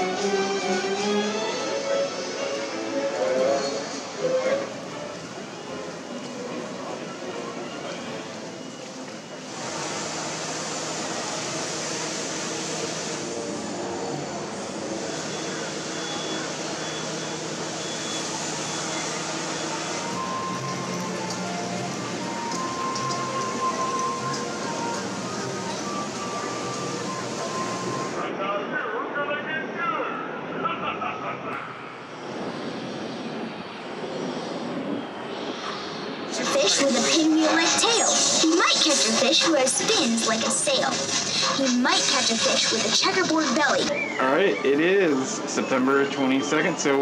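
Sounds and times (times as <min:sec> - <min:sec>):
background music: 0:00.0 - 0:10.0, 0:18.4 - 0:28.2
faint voices: 0:01.6 - 0:09.7, 0:12.6 - 0:47.0
faint held melody notes: 0:16.0 - 0:28.2
wind on microphone: 0:31.9 - 0:36.6.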